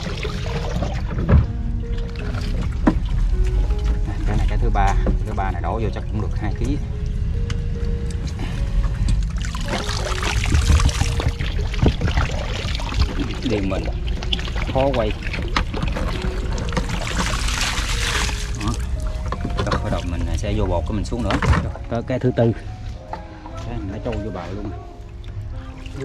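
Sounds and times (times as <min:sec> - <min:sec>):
low rumble: 0:00.0 - 0:26.0
plastic water jug handled: 0:09.6 - 0:21.9.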